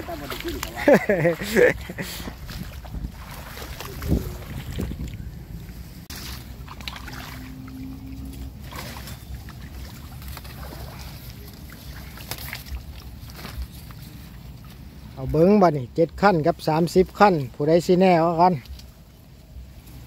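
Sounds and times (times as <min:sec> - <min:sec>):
wind buffeting microphone: 0:00.0 - 0:06.1
reeds rustling: 0:00.0 - 0:15.2
marsh water sloshing: 0:00.0 - 0:15.5.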